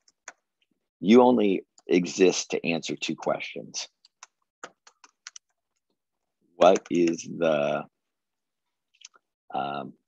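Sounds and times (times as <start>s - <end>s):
faint keyboard typing: 0.0s - 0.8s, 3.9s - 7.3s.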